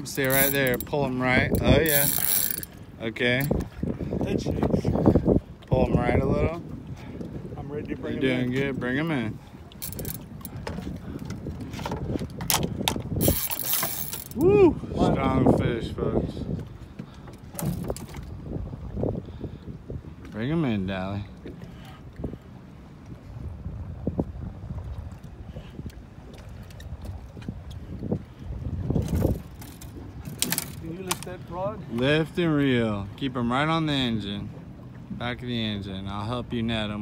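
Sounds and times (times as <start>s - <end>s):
water slapping boat hull: 0.0s - 37.0s
wind rumbling on microphone: 0.0s - 37.0s.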